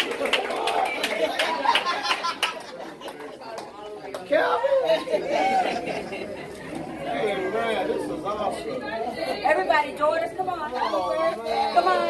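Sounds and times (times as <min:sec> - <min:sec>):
party chatter: 0:00.0 - 0:12.0.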